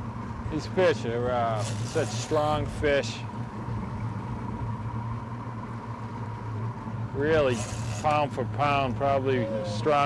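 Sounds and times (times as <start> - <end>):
outboard motor humming: 0.0 - 10.0
sea noise: 0.0 - 10.0.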